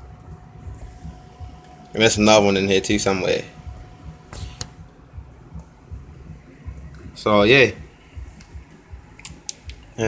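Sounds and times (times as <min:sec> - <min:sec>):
small sharp clicks: 0:09.2 - 0:09.9.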